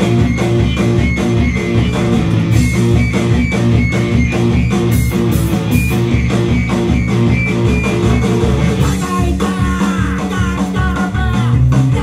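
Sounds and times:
bass guitar: 0.0s - 12.0s
drums with steady beat: 0.0s - 12.0s
electric guitars: 0.0s - 12.0s.

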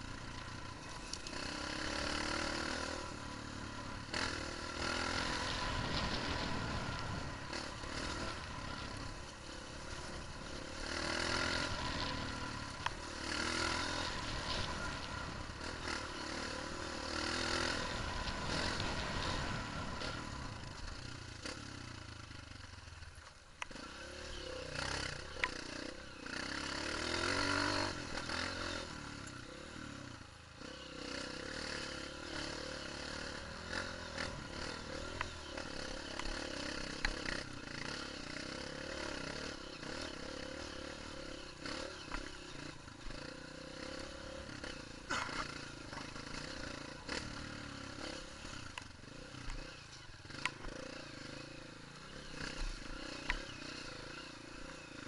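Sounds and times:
dirt bike engine revving: 0.0s - 55.0s
knocks and rattles from bike: 43.1s - 51.5s.

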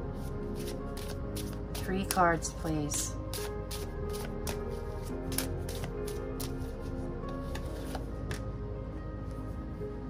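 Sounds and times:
background music with held notes: 0.0s - 10.0s
cards being shuffled: 0.6s - 2.2s, 3.3s - 6.7s, 7.3s - 8.4s.

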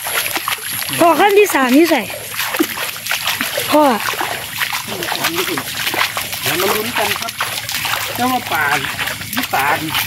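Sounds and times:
feet wading through water and mud: 0.0s - 10.0s.

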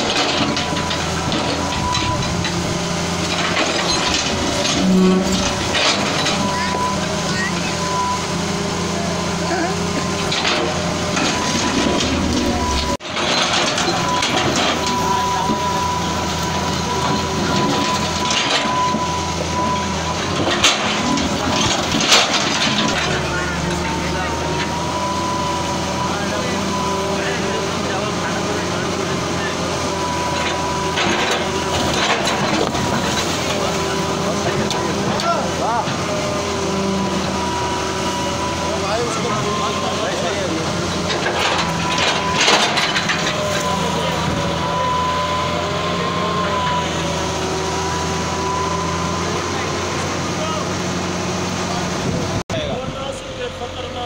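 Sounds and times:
excavator engine running: 0.0s - 54.0s.

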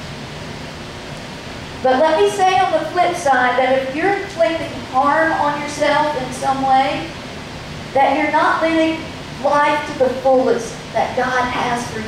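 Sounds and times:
background hiss: 0.0s - 12.0s
woman speaking: 1.8s - 7.2s, 8.0s - 12.0s.

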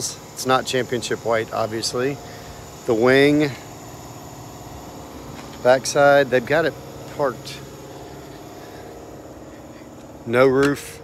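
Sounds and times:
mechanical hum with low drone: 0.0s - 11.0s.

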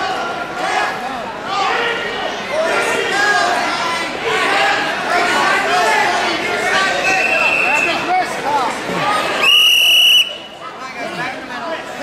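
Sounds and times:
crowd chatter: 0.0s - 12.0s
referee's whistle blast: 7.0s - 8.0s, 9.4s - 10.6s.

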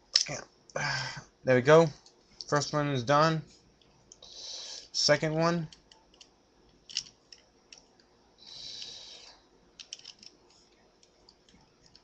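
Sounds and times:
plastic toy parts clicking: 6.9s - 7.8s, 9.8s - 10.4s.

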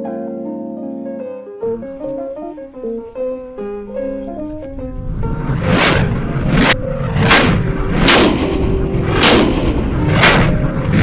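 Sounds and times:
gunshots echoing indoors: 6.7s - 11.0s.

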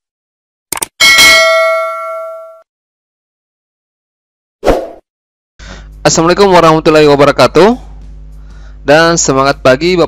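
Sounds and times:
notification bell ringing: 1.0s - 2.6s.

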